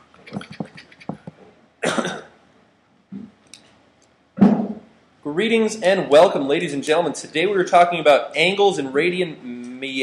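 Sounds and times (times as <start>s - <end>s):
person coughing: 1.8s - 2.3s.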